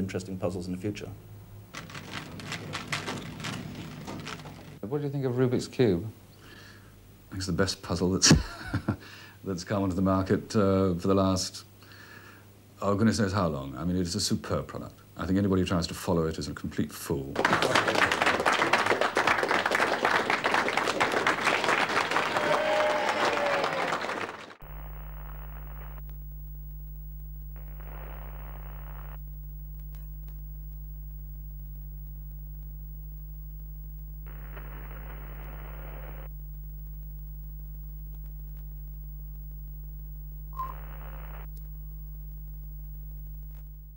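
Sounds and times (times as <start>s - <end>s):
steady low hum: 0.0s - 15.8s, 24.5s - 43.9s
burst of static: 1.7s - 4.8s, 24.5s - 43.9s
crowd applauding: 1.8s - 4.8s, 17.4s - 24.7s
brief beep: 40.5s - 41.0s.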